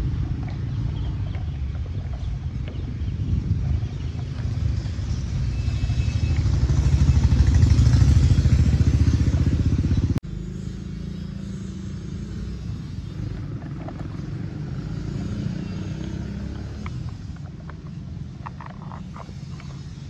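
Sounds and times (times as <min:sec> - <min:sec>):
engine chugging: 0:00.0 - 0:20.0.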